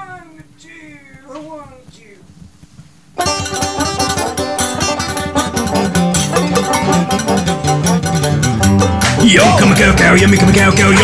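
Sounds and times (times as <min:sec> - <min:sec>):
plucked strings: 0:03.2 - 0:11.0
string bass: 0:03.2 - 0:11.0.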